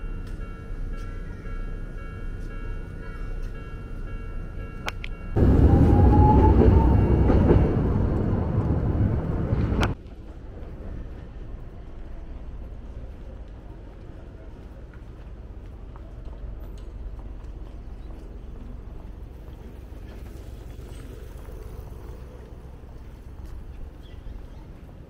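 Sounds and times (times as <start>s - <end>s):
street ambience: 0.0s - 25.0s
tram running rumble: 0.0s - 25.0s.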